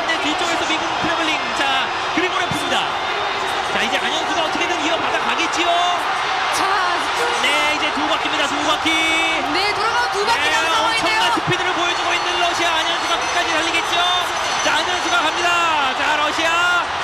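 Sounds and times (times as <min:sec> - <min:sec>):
crowd cheering and shouting: 0:00.0 - 0:17.0.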